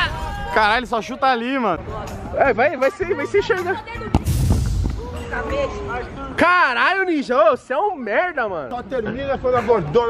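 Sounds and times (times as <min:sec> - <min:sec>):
football kicked with thump: 0:04.1 - 0:05.0.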